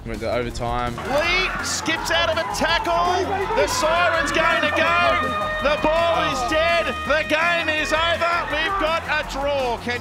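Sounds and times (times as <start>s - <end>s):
background music with held tones: 0.0s - 10.0s
excited match commentary: 0.0s - 10.0s.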